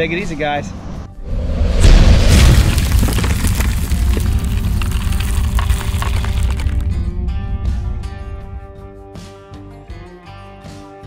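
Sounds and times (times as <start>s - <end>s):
deep rumbling hit: 1.2s - 8.8s.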